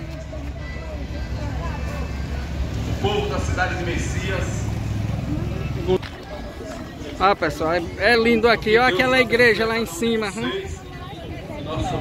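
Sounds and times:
faint voices: 0:00.0 - 0:12.0
low street rumble: 0:00.0 - 0:12.0.

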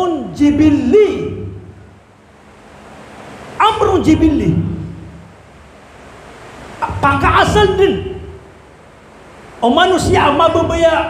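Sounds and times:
man's amplified speech: 0:00.0 - 0:01.7, 0:03.6 - 0:05.1, 0:06.8 - 0:08.4, 0:09.6 - 0:11.0
sound system hiss and hum: 0:00.0 - 0:11.0.

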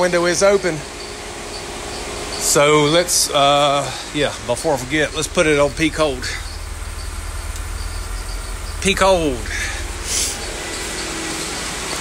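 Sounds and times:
steady low rumble with hiss: 0:00.0 - 0:12.0
short rustling hiss: 0:09.8 - 0:11.7.

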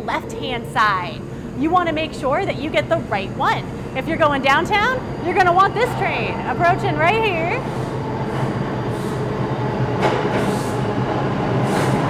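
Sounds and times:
subway train on rails: 0:00.0 - 0:12.0.

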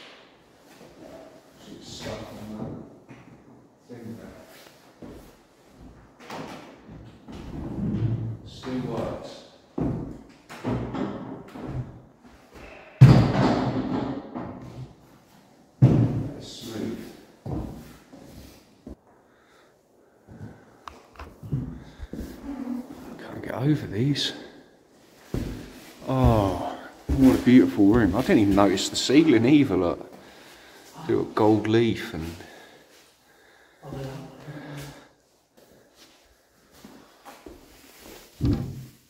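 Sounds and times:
wooden shutters knocking and thudding: 0:09.8 - 0:12.0.

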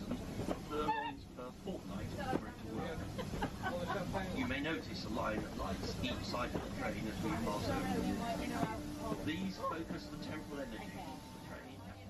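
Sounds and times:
train carriage rumble: 0:00.0 - 0:12.0.

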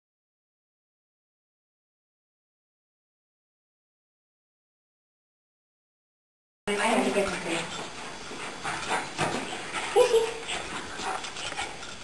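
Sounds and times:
puppies scuffling on hard floor: 0:06.7 - 0:12.0.

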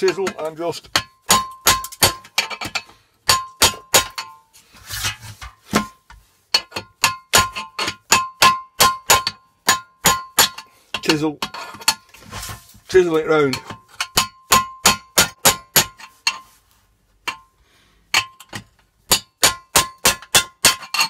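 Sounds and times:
hammer striking chisel on metal: 0:00.1 - 0:04.4, 0:06.5 - 0:12.0, 0:13.5 - 0:16.4, 0:18.1 - 0:21.0.

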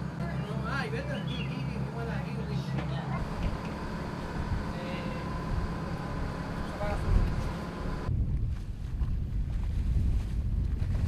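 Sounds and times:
motorboat engines rumbling: 0:00.0 - 0:08.1
wind buffeting microphone: 0:03.2 - 0:11.0.

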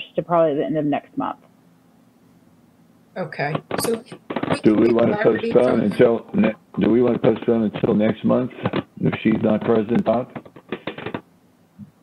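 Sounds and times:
choppy speech over video call: 0:03.2 - 0:11.2.

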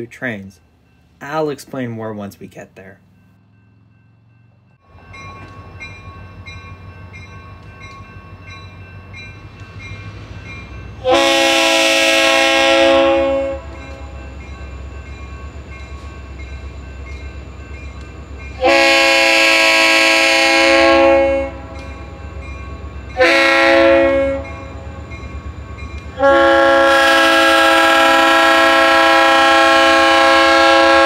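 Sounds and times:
locomotive air horn blasts: 0:11.0 - 0:14.2, 0:18.6 - 0:21.8, 0:23.2 - 0:24.7, 0:26.2 - 0:31.0.

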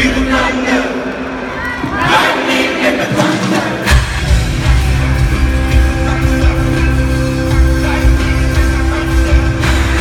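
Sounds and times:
live rock band: 0:00.0 - 0:10.0
crowd cheering and screaming: 0:01.0 - 0:02.5
drums and heavy bass: 0:02.9 - 0:10.0.

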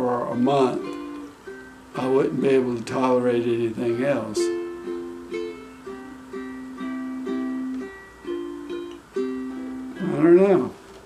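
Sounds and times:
ukulele chords strummed: 0:00.0 - 0:10.8.

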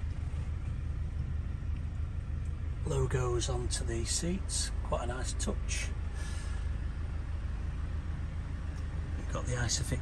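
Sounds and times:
car cabin low rumble: 0:00.0 - 0:10.0.

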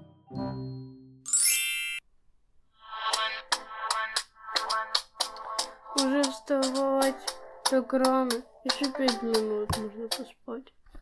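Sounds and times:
bell-like dings: 0:00.7 - 0:02.0
bright sparkling chime sweep: 0:01.3 - 0:02.0.

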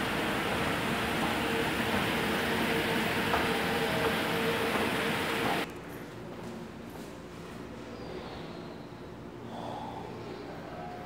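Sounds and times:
breath close to microphone: 0:09.5 - 0:10.6.

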